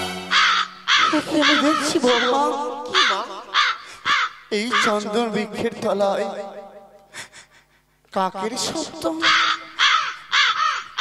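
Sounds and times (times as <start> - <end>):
music: 0.0 - 2.0
crow cawing: 0.2 - 5.1, 9.1 - 11.0.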